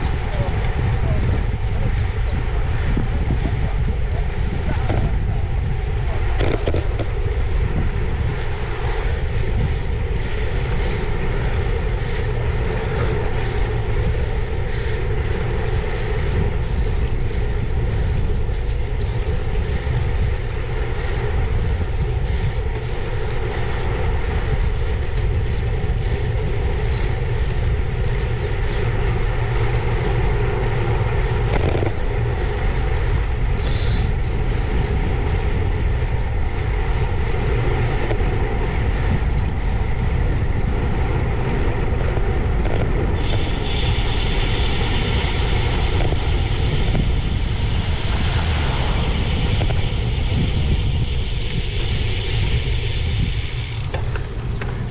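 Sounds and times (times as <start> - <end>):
tyre noise on tarmac: 0.0 - 54.9
wind rushing over microphone: 0.0 - 54.9.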